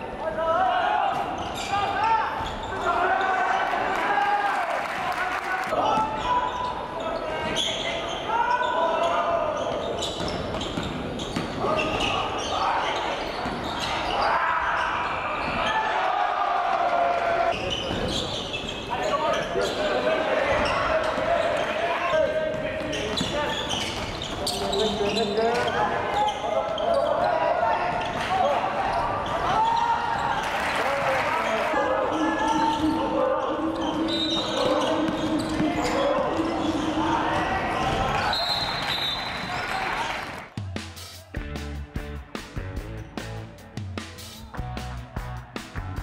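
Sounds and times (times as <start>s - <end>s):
players shouting: 0.2s - 10.1s, 11.6s - 18.2s, 18.9s - 40.5s.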